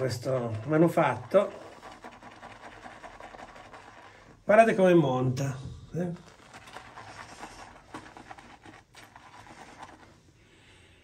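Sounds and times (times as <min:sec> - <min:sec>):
shaving brush whipping lather: 0:00.0 - 0:04.2, 0:06.0 - 0:10.2.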